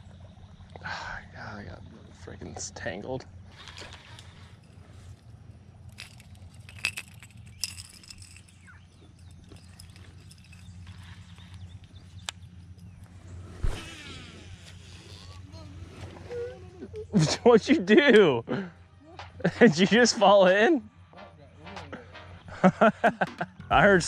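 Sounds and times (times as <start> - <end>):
fishing tackle clicks: 3.5 - 13.1.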